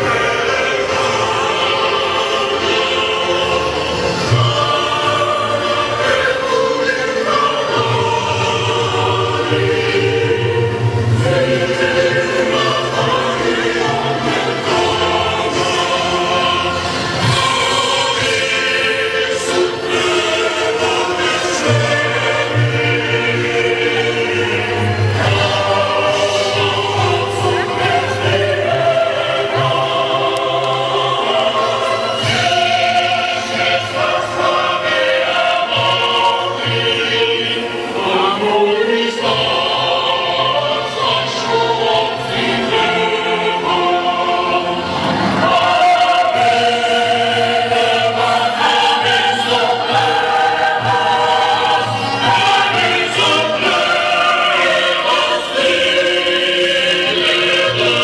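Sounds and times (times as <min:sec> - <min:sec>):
choir singing sustained chords: 0:00.0 - 0:58.0.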